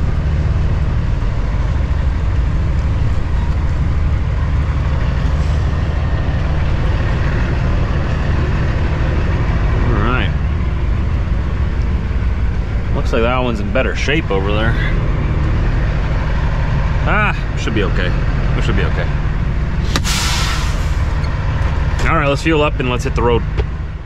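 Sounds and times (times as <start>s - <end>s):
diesel truck engine idling low: 0.0s - 24.0s.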